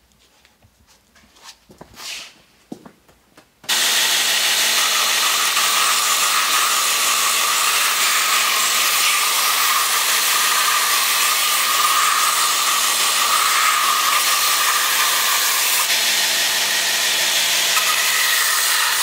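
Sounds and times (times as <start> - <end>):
belt grinder sanding leather: 3.7 - 19.0.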